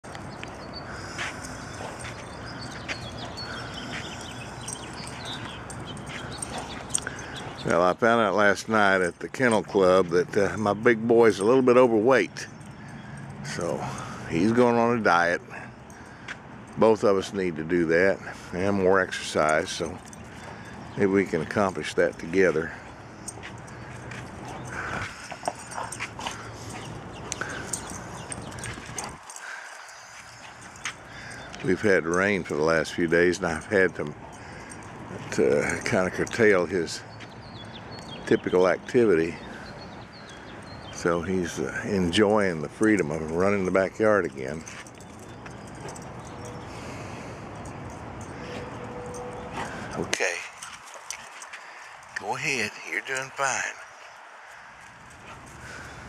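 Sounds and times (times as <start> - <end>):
dog paws on dirt and grass: 0.0 - 56.0
outdoor background noise: 0.0 - 56.0.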